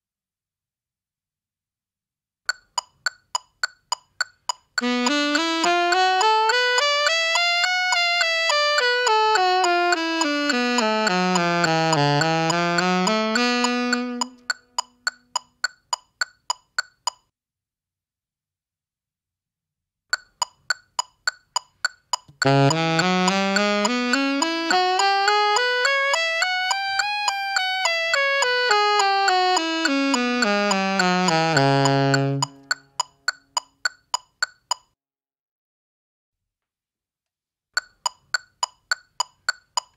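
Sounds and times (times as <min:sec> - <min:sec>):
metronome clicking: 0:02.5 - 0:17.3, 0:20.1 - 0:35.0, 0:37.8 - 0:39.9
alto saxophone playing scale: 0:04.8 - 0:15.1, 0:22.4 - 0:33.0.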